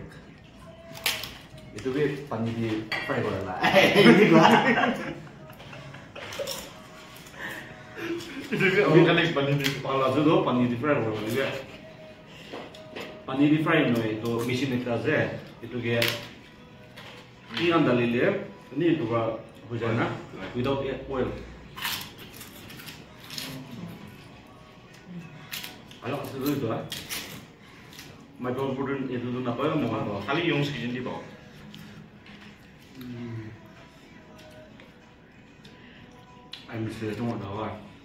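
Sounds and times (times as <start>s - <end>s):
crackers being chewed: 5.5s - 7.4s, 21.4s - 28.4s.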